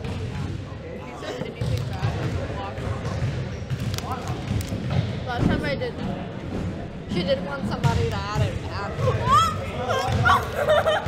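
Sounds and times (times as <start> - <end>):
faint voices chattering: 0.0 - 11.0.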